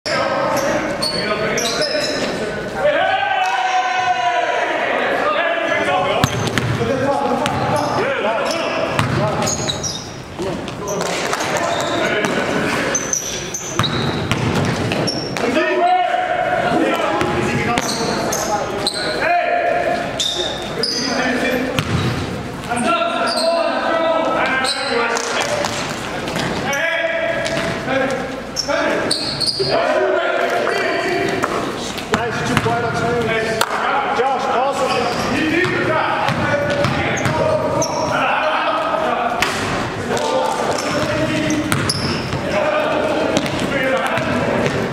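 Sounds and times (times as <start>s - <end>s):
voices echoing in hall: 0.0s - 44.9s
sneakers squeaking: 0.1s - 2.8s, 5.7s - 15.7s, 16.4s - 29.8s, 34.7s - 44.9s
basketball bouncing on court: 6.2s - 7.8s, 8.9s - 9.8s, 13.6s - 15.4s, 21.8s - 22.2s, 32.2s - 32.9s, 35.6s - 37.6s, 40.8s - 42.4s, 43.3s - 44.9s.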